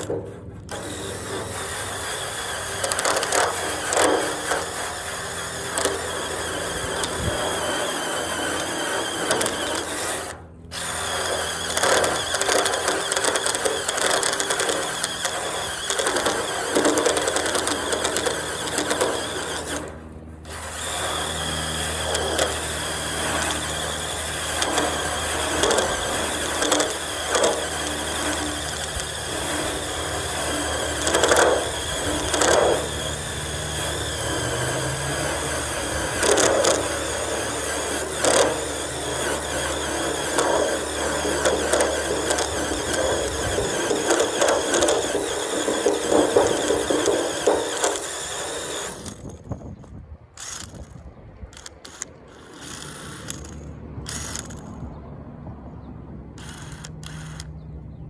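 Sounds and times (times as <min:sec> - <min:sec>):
drill scraping rusty metal: 0:00.0 - 0:54.8, 0:56.4 - 0:57.5.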